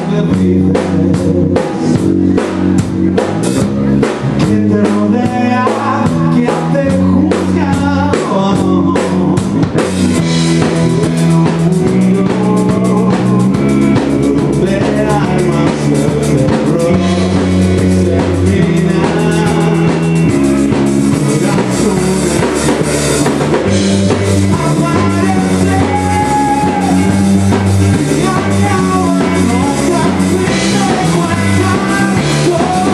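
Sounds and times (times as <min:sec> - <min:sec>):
drum kit beat: 0:00.0 - 0:32.9
electric guitars: 0:00.0 - 0:32.9.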